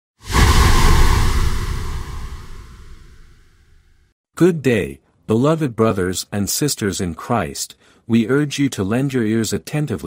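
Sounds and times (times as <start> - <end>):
cinematic whoosh with booming rumble: 0.2 - 3.6.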